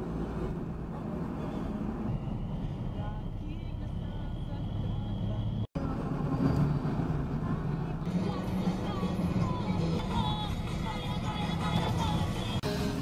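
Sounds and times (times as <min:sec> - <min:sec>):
car engine and tyres rumbling: 0:00.0 - 0:13.0.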